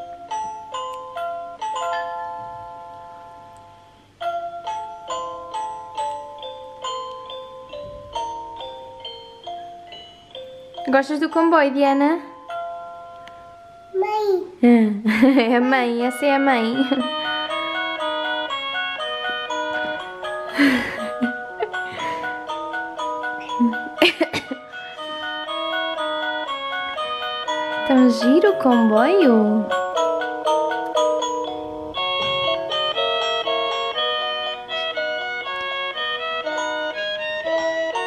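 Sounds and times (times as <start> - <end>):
tinny electronic chime melody: 15.7 - 34.2.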